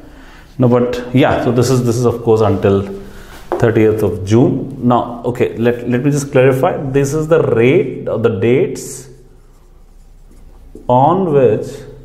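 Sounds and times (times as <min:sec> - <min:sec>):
man speaking: 0:00.6 - 0:09.3, 0:10.8 - 0:12.0
marker writing on whiteboard: 0:09.3 - 0:11.0.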